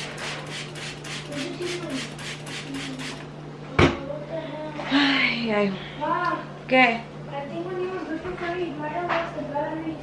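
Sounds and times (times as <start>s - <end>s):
spray bottle squirts: 0.0s - 3.2s.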